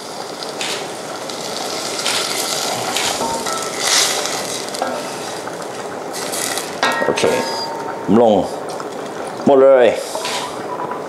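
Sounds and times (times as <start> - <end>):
liquid pouring into a pot: 0.0 - 9.4
sizzling and bubbling: 0.0 - 11.0.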